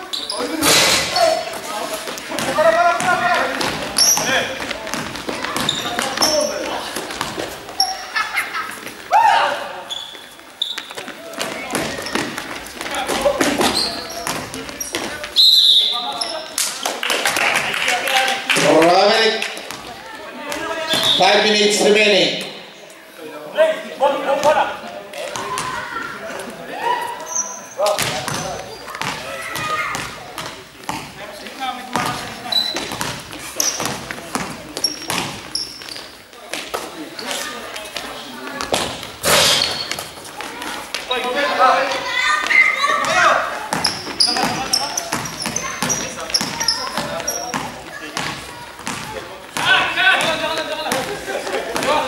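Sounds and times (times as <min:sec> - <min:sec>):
basketball bouncing on floor: 0:02.3 - 0:07.4, 0:11.4 - 0:15.2, 0:27.9 - 0:31.2, 0:31.9 - 0:35.5, 0:43.0 - 0:51.1, 0:51.7 - 0:52.0.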